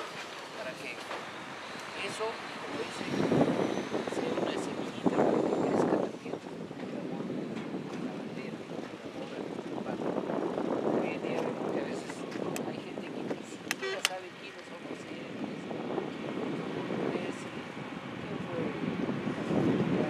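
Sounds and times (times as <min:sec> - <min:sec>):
outdoor background noise: 0:00.0 - 0:20.0.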